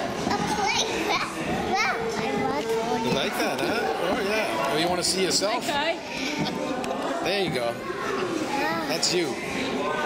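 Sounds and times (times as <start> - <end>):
children talking and calling out: 0.0 - 4.6, 6.0 - 10.0.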